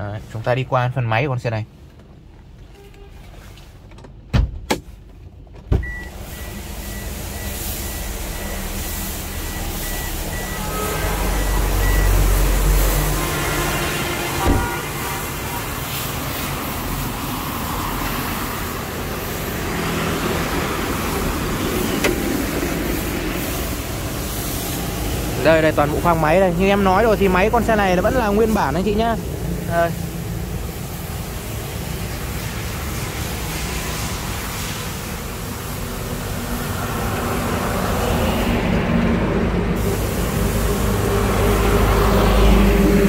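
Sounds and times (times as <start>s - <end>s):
road traffic noise: 0.0s - 43.0s
car door opening and shutting: 1.9s - 7.4s, 14.1s - 15.0s, 21.6s - 22.8s
rapid high beeping: 5.9s - 12.8s.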